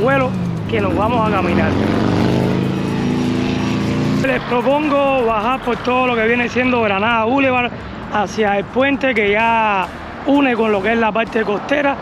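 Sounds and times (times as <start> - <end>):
engine running low drone: 0.0 - 8.3.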